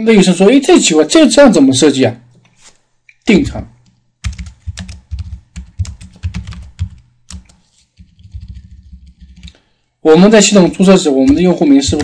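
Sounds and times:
typing on computer keyboard: 0:03.8 - 0:09.6, 0:10.7 - 0:12.0.

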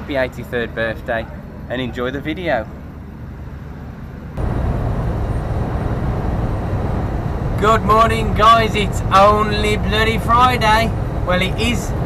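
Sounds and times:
faint street ambience: 0:00.0 - 0:12.0
lorry engine and road noise: 0:00.0 - 0:12.0.

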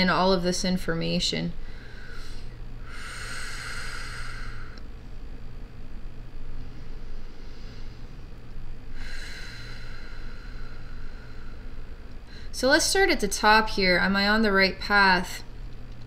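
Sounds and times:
woman breathing deeply: 0:01.6 - 0:04.9, 0:06.5 - 0:12.6.

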